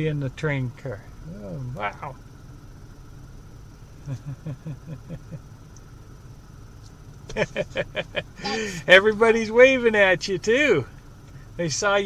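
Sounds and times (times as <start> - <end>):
vehicle rumble inside car: 0.0 - 12.0
person laughing: 4.0 - 5.4, 7.3 - 8.9.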